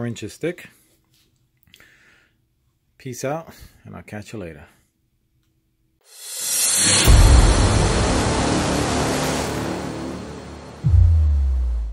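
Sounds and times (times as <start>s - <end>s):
broad rushing whoosh: 6.3s - 11.9s
deep rumble: 6.9s - 11.9s.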